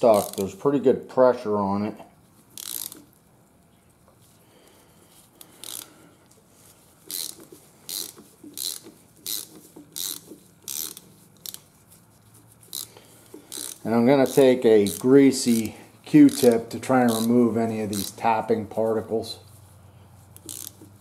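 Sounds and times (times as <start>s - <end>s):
hand ratchet clicking: 0.0s - 0.5s, 2.5s - 3.2s, 5.4s - 6.0s, 7.0s - 11.7s, 12.6s - 18.5s, 20.3s - 21.0s.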